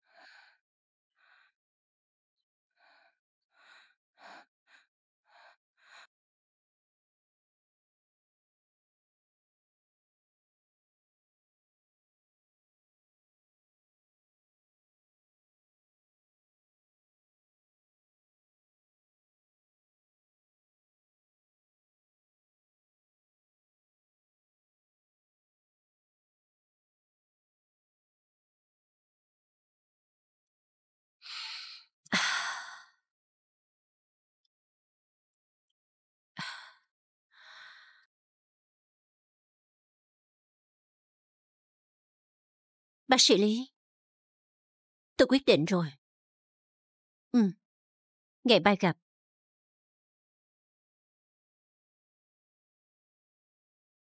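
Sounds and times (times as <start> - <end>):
woman gasping breaths: 31.3 - 33.0, 36.4 - 38.1.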